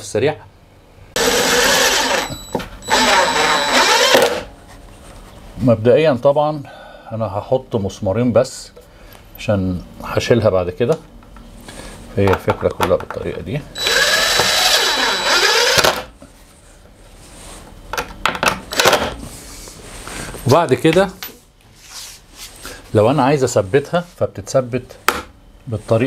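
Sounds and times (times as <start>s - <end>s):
drill driving screw into wood: 1.2s - 4.5s, 13.8s - 16.1s.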